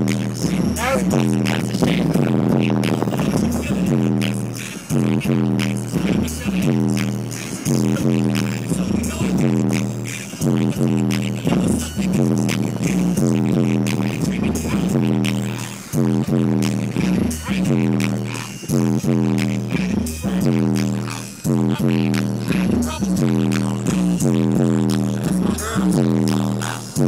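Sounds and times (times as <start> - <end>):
bass-heavy music on car stereo: 0.0 - 27.0.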